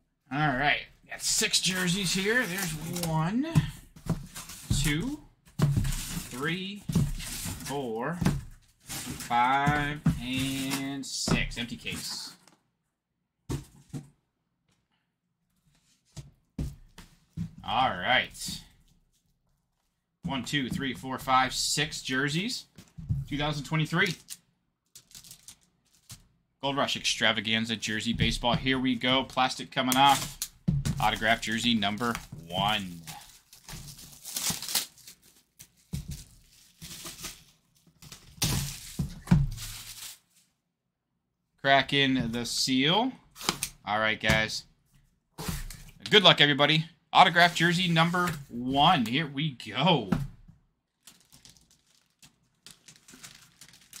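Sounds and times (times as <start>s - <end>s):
boxes thumping on table: 5.5s - 10.7s, 13.5s - 14.1s
plastic shrink-wrap tearing and crinkling: 24.2s - 26.2s, 33.0s - 40.4s, 50.9s - 54.0s.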